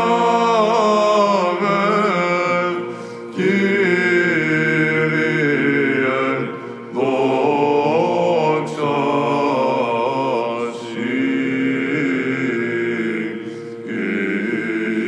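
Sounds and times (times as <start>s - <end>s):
men chanting melismatic melody: 0.0s - 15.0s.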